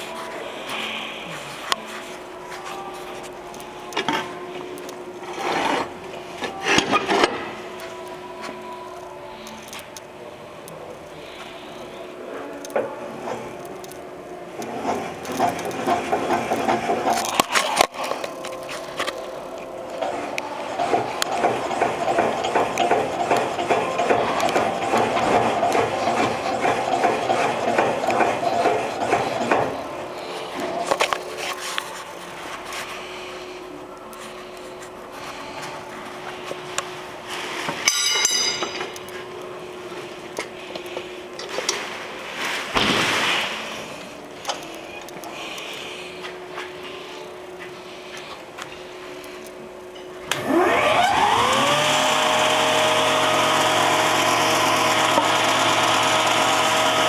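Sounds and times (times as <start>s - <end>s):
spindle moulder running: 18.2s - 31.5s.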